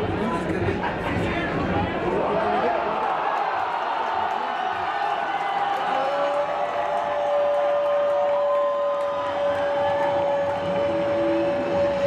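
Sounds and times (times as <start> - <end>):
stadium crowd cheering: 0.6 - 12.0.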